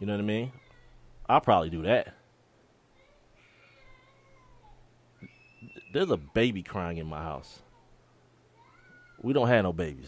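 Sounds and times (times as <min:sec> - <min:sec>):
faint high crying wail: 0:00.5 - 0:01.1, 0:03.0 - 0:06.2, 0:07.6 - 0:09.4.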